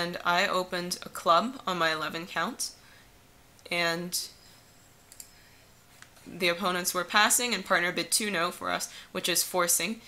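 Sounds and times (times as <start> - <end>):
computer mouse click: 5.1 - 5.3
person speaking: 6.2 - 10.0.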